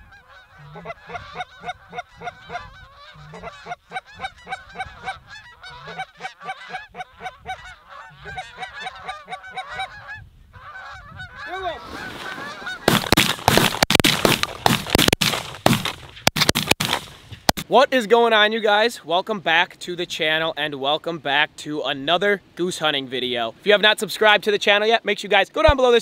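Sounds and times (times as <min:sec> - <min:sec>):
geese honking in flight: 0:00.0 - 0:13.0
rushing noise with sharp cracks: 0:12.0 - 0:17.7.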